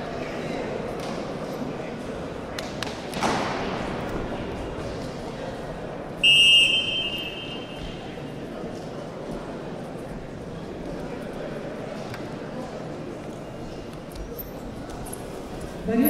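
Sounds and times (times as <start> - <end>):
crowd murmur: 0.0 - 16.0
referee's whistle blast: 6.2 - 8.0.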